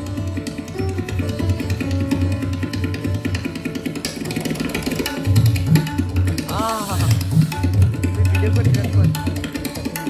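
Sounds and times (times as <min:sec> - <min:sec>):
sitar plucking: 0:00.0 - 0:10.0
tabla bass strokes: 0:04.6 - 0:10.0.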